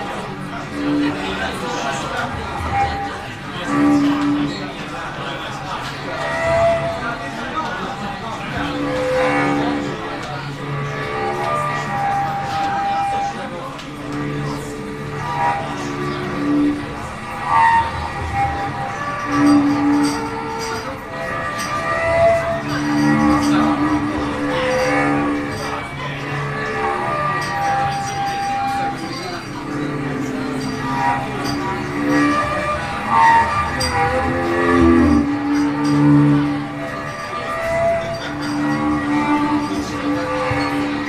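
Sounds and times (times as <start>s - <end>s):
cello bowed long notes: 0.0s - 41.0s.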